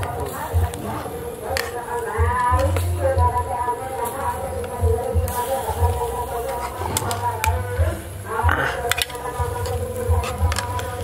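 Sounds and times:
insects buzzing: 0:00.0 - 0:11.0.

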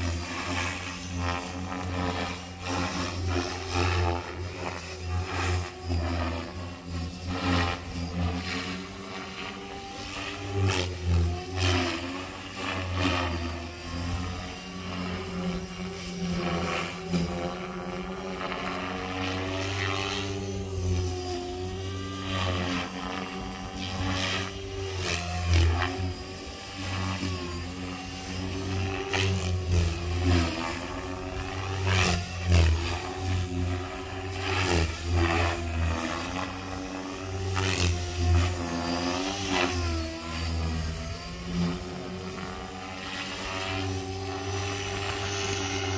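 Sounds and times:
rc helicopter motor whine: 0:00.0 - 0:45.9.

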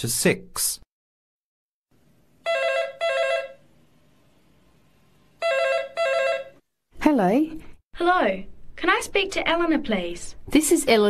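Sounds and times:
telephone ringing: 0:02.4 - 0:03.6, 0:05.4 - 0:06.6.

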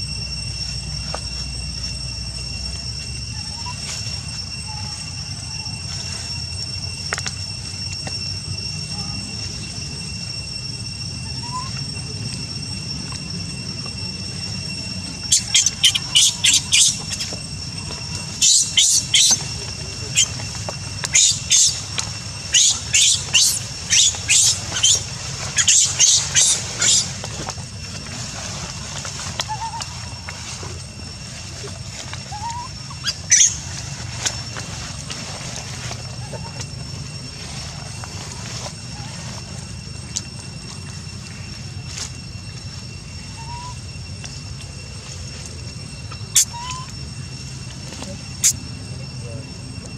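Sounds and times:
steady high-pitched whine: 0:00.0 - 0:49.9
steady low hum: 0:00.0 - 0:49.9
baby monkey squealing: 0:11.2 - 0:11.8, 0:15.2 - 0:17.4, 0:18.1 - 0:20.4, 0:21.0 - 0:27.2, 0:29.3 - 0:30.2, 0:32.2 - 0:33.8, 0:46.3 - 0:47.0.

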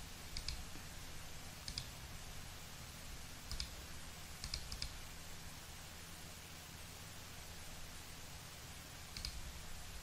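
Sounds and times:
computer mouse clicking: 0:00.3 - 0:00.6, 0:01.6 - 0:01.9, 0:03.5 - 0:03.8, 0:04.4 - 0:05.0, 0:09.1 - 0:09.4.

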